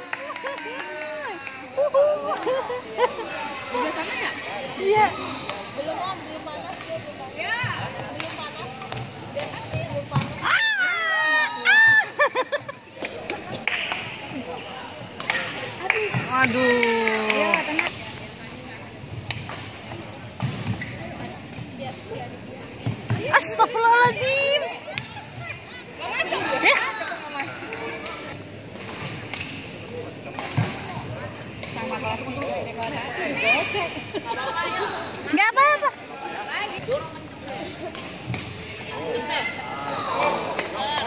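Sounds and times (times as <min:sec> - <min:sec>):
sports hall noise: 0:00.0 - 0:41.0.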